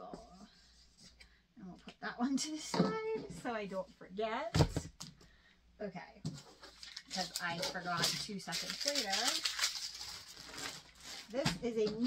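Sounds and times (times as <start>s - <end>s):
plastic bag rustling: 6.4s - 11.7s.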